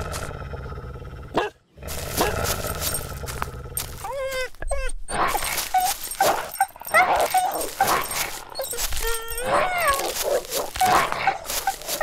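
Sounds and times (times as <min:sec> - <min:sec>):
dog whining and yelping: 0:03.8 - 0:12.0.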